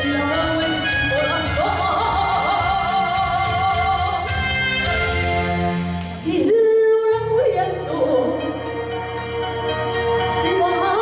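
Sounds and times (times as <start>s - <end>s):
woman singing into a microphone: 0.0s - 4.3s, 6.2s - 8.8s, 10.1s - 11.0s
backing music: 0.0s - 11.0s.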